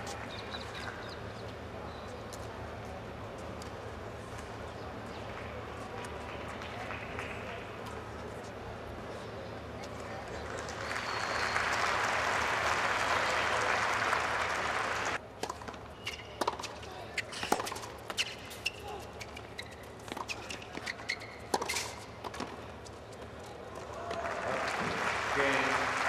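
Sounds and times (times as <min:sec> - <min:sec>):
crowd applauding: 0:10.4 - 0:15.2, 0:24.0 - 0:26.0
short high shoe squeaks: 0:15.9 - 0:16.4, 0:17.1 - 0:22.1
tennis ball bounces: 0:16.4 - 0:18.4, 0:20.0 - 0:22.6.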